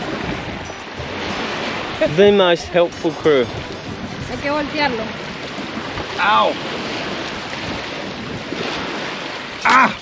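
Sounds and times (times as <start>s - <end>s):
wind on microphone: 0.0s - 9.6s
waves washing onto shore: 0.0s - 10.0s.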